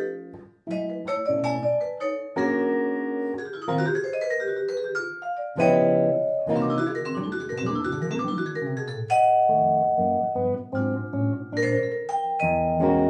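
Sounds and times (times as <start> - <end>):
vibraphone notes: 0.0 - 13.0.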